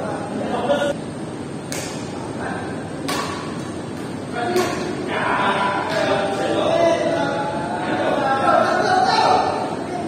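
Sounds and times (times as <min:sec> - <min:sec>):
racket smacking shuttlecock: 0:01.7 - 0:02.2, 0:03.0 - 0:05.0.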